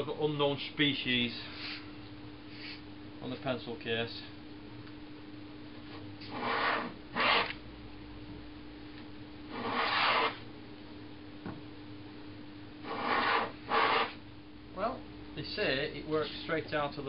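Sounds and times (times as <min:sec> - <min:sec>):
hand plane shaving wood: 0:09.6 - 0:10.4, 0:12.9 - 0:14.2.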